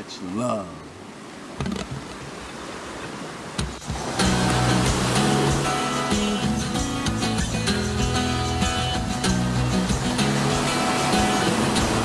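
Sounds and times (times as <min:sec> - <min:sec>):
surf washing onto beach: 0:00.0 - 0:12.0
music with steady bass line: 0:04.2 - 0:12.0.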